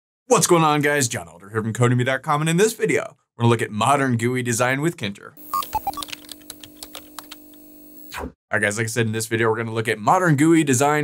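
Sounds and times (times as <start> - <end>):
keyboard keystroke clicks: 5.6 - 7.6.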